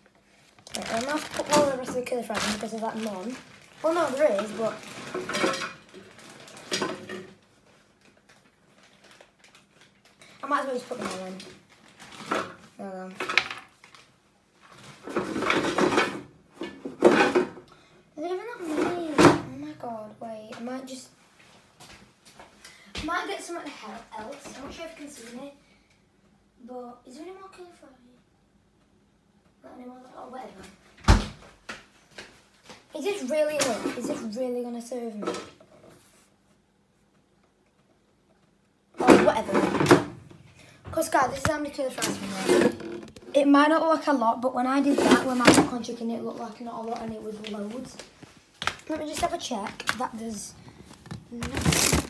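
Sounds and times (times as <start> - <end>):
air fryer basket scraping and rattling: 41.9 - 43.2.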